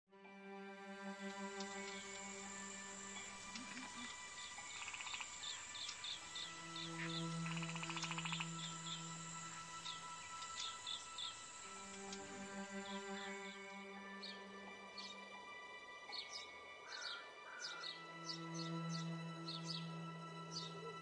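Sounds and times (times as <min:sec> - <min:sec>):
quiet slow music: 0:00.1 - 0:21.0
birds chirping: 0:01.2 - 0:21.0
bird rapid trills: 0:03.0 - 0:11.6.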